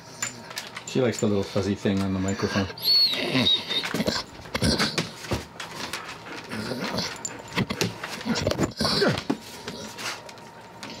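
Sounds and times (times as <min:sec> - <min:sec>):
dog sniffing and snuffling: 0:01.3 - 0:11.0
dog whining: 0:02.3 - 0:05.0.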